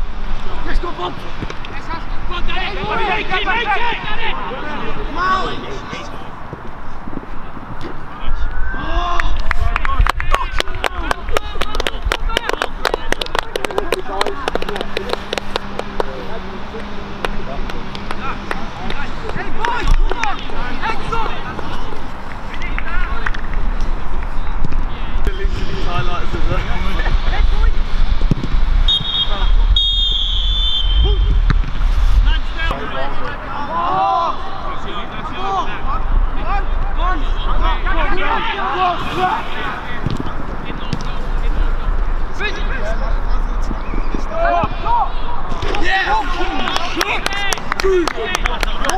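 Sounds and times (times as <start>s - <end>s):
players shouting and cheering: 0.4s - 6.7s, 7.4s - 48.9s
sharp handclaps: 9.2s - 16.1s, 46.6s - 48.9s
low rumble: 25.3s - 33.8s, 34.4s - 38.3s
referee's whistle blasts: 28.9s - 31.2s.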